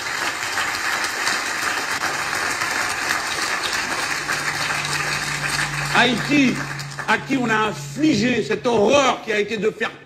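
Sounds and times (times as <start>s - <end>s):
audience applauding through speakers: 0.0s - 8.1s.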